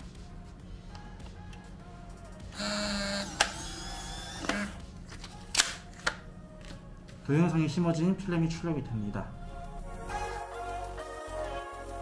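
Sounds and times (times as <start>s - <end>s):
printer motor whirring: 2.6s - 4.8s.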